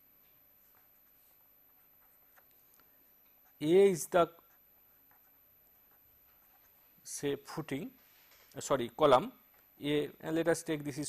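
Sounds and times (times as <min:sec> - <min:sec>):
pen scratching on paper: 0:00.6 - 0:02.7, 0:03.3 - 0:07.0.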